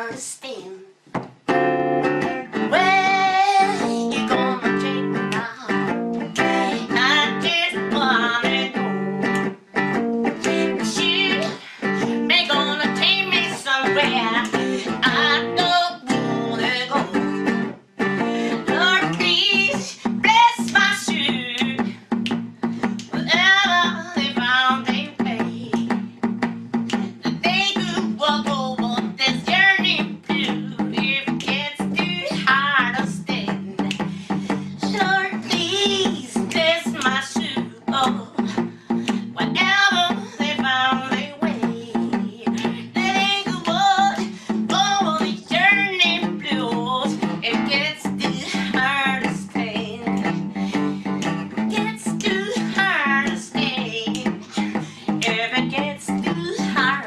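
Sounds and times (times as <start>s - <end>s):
electric guitar through amplifier: 1.4s - 57.0s
woman singing: 2.4s - 9.5s, 10.2s - 26.1s, 26.9s - 57.0s.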